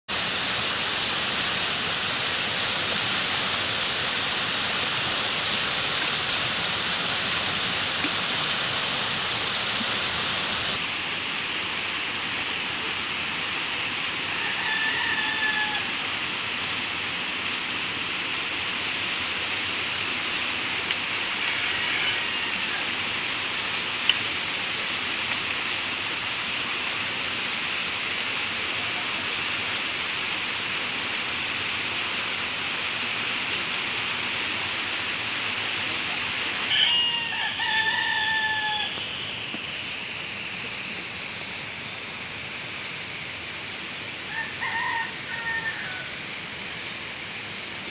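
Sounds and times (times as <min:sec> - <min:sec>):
floodwater rushing over a weir: 0:00.1 - 0:47.9
rooster crowing: 0:14.2 - 0:16.1, 0:21.2 - 0:23.0, 0:36.6 - 0:39.2, 0:44.3 - 0:46.2.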